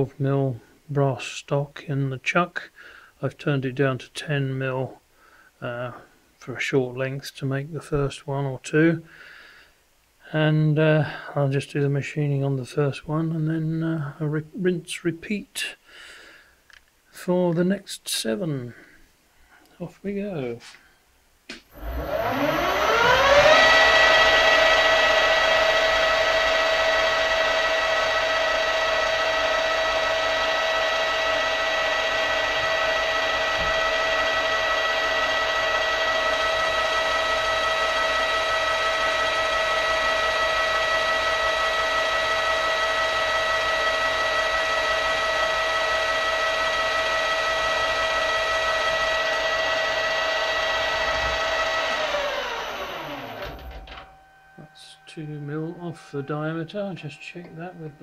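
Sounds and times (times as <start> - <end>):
metal lathe motor whine: 21.7 - 58.0.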